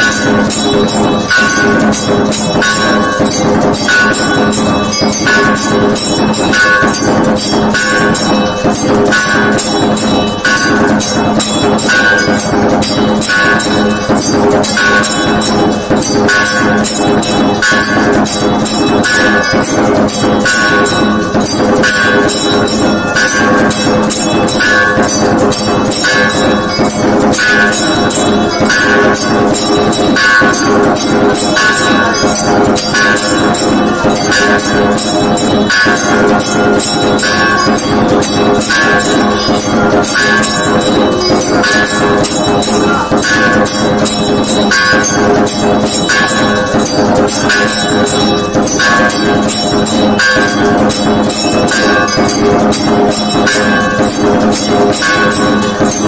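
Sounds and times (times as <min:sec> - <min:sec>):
temple music with bells and percussion: 0:00.0 - 0:56.0.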